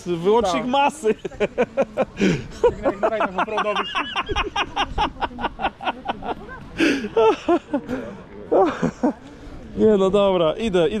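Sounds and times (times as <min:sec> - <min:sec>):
voices talking: 0:00.0 - 0:11.0
man laughing heartily: 0:01.2 - 0:06.3.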